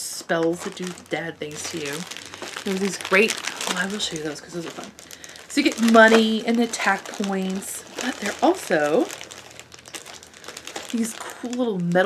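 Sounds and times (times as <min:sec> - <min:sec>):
packaging rustling and crinkling: 0:00.0 - 0:12.0.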